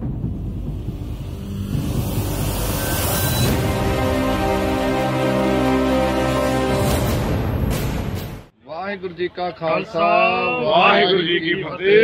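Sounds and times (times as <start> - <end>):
low rumbling logo sound effect: 0.0 - 4.7.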